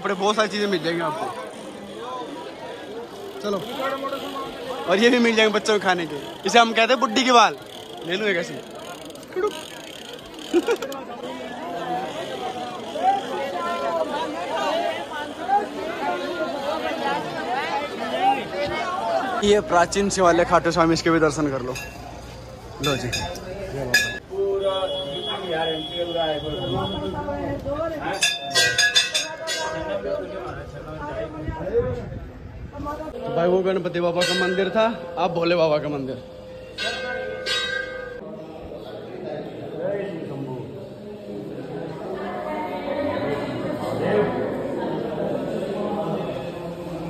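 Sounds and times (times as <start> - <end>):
crowd chatter: 0.0 - 47.0
temple bell ringing: 33.2 - 38.2.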